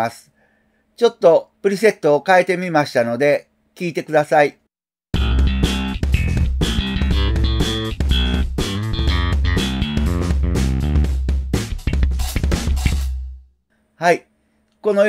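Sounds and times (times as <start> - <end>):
slap bass playing: 5.2 - 13.4.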